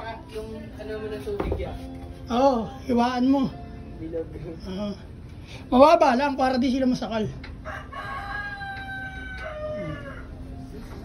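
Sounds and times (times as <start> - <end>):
rooster crowing: 7.6 - 10.6.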